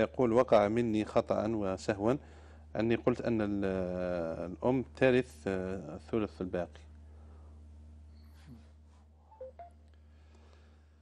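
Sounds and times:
low electrical hum: 0.0s - 11.0s
short telephone beeps: 9.4s - 9.8s.

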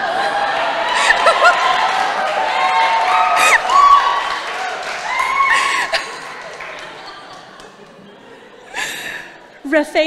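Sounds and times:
audience laughter: 0.0s - 2.5s, 4.6s - 9.9s
audience applause: 0.0s - 9.2s.

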